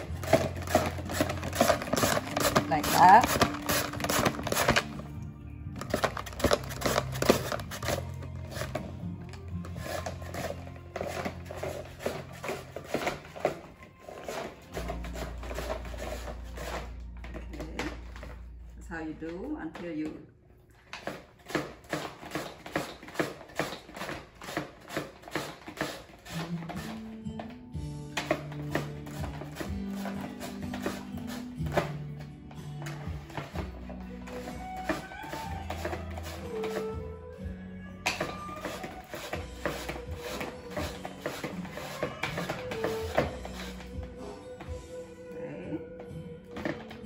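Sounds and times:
mango scraping on a grater: 0:00.0 - 0:04.9, 0:09.6 - 0:16.9, 0:28.6 - 0:31.9, 0:34.3 - 0:37.0, 0:38.2 - 0:43.9
background music with held notes: 0:00.0 - 0:47.0.

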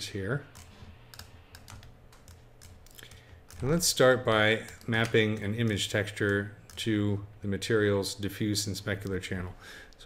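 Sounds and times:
low steady hum: 0:00.0 - 0:10.0
mouse clicks: 0:00.5 - 0:03.7
computer keyboard clicks: 0:00.5 - 0:06.9.

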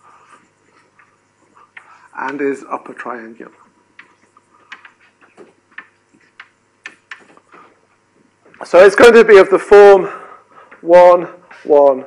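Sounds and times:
writing taps and scrapes on board: 0:00.4 - 0:02.7, 0:04.0 - 0:07.7.

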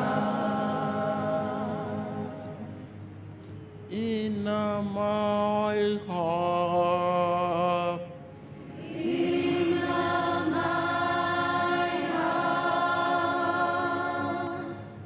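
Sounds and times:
voices singing together: 0:00.0 - 0:02.9, 0:08.6 - 0:15.0
man singing church song: 0:03.9 - 0:08.2.

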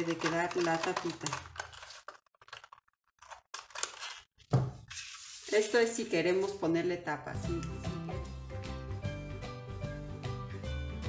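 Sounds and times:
scissors snipping plastic sheet: 0:00.0 - 0:04.3.

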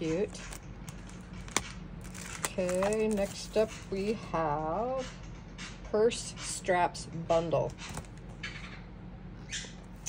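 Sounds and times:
plastic packaging crinkling: 0:00.4 - 0:03.7.

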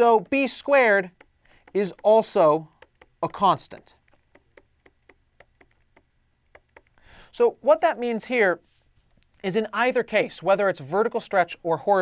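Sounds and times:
stylus tapping on pen tablet: 0:00.0 - 0:07.0.

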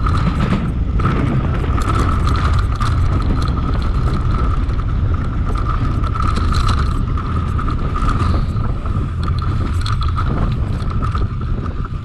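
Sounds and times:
bicycle freehub buzzing: 0:00.0 - 0:12.0
bike rattles and clicks: 0:00.0 - 0:12.0
wind rumbling on microphone: 0:00.0 - 0:12.0.

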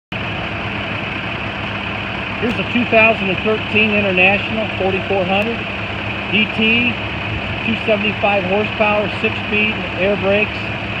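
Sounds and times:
diesel engine idling: 0:00.1 - 0:11.0.

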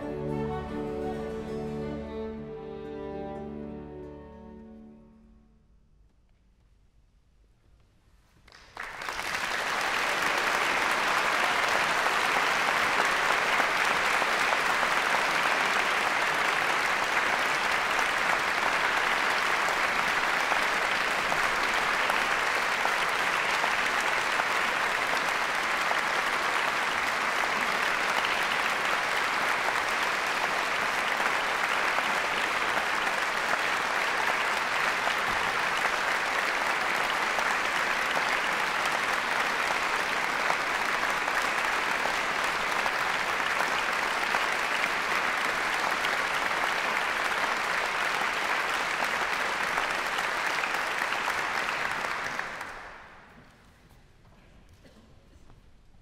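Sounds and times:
audience applauding: 0:08.4 - 0:53.5.

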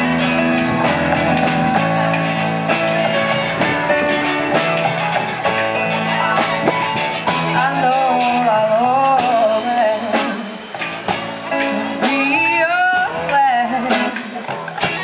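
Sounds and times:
drum hits: 0:00.0 - 0:07.7
electric guitar: 0:00.0 - 0:15.0
upright double bass: 0:00.0 - 0:15.0
woman singing into microphone: 0:07.5 - 0:10.7, 0:11.7 - 0:14.6.

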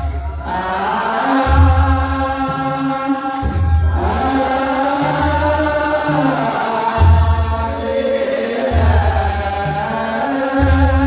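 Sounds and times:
deep drum beat: 0:00.0 - 0:08.0
men chanting in unison: 0:00.0 - 0:11.0.

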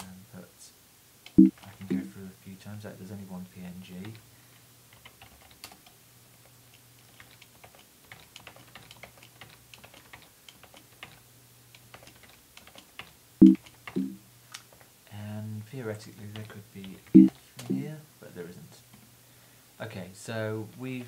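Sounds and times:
faint low hum: 0:00.0 - 0:07.7, 0:13.4 - 0:21.0.

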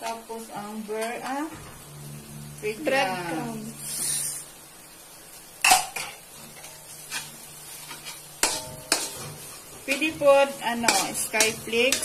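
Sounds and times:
bread crumbs pouring hiss: 0:03.7 - 0:04.6
fork scraping a metal wok: 0:03.8 - 0:04.4, 0:06.0 - 0:12.0
fork clinking on metal pan: 0:07.9 - 0:09.3.

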